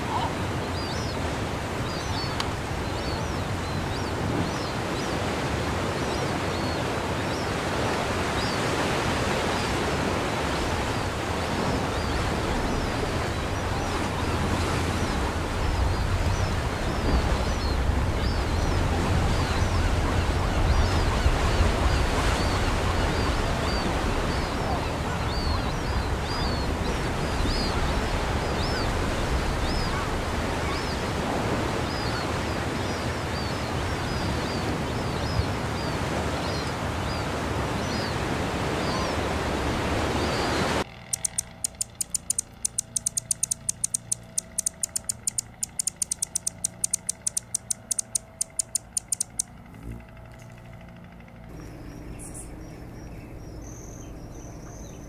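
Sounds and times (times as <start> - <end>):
water noise: 0.0 - 49.9
high bird chirps: 41.0 - 49.5
fast sharp clicking: 41.1 - 49.6.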